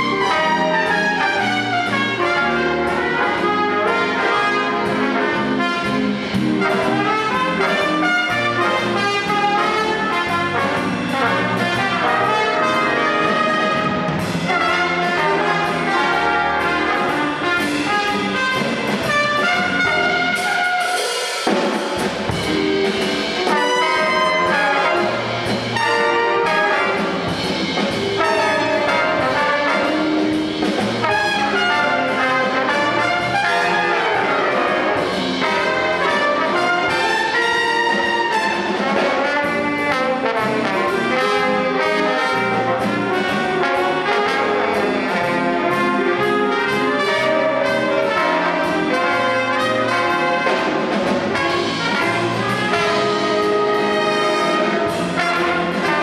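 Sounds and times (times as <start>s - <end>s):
jazz big band playing: 0.0s - 56.0s.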